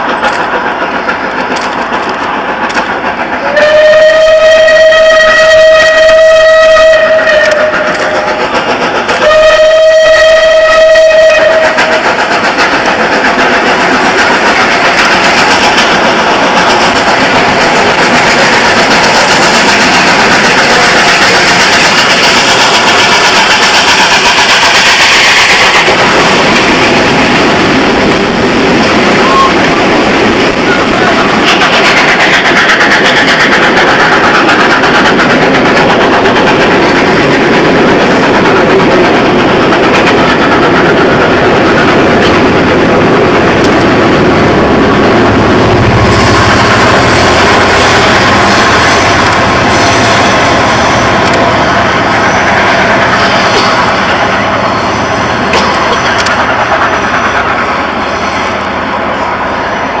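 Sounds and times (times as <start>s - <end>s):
locomotive exhaust: 0.0s - 59.9s
steam train passing: 0.0s - 60.0s.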